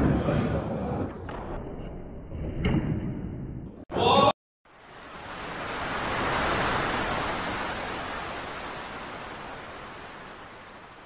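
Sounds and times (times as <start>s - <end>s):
ocean surf foaming water: 4.7s - 11.0s.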